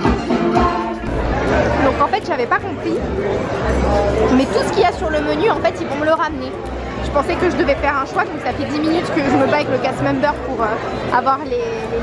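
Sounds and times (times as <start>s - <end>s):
live band playing show music: 0.0s - 4.4s
low drum beat: 0.0s - 10.6s
audience chatter: 0.0s - 12.0s.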